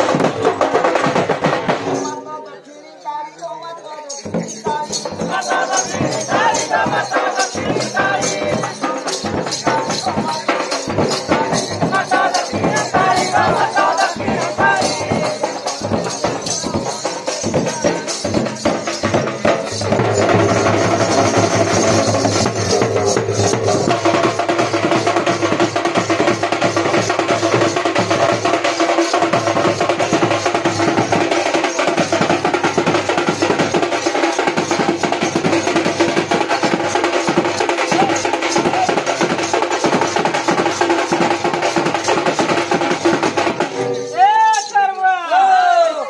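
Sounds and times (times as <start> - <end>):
barrel drum beaten fast: 0.0 - 2.2, 4.2 - 44.7
hand percussion: 0.0 - 46.0.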